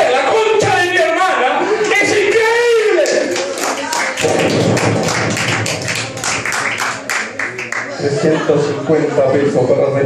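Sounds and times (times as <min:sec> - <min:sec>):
audience clapping: 0:02.9 - 0:08.0.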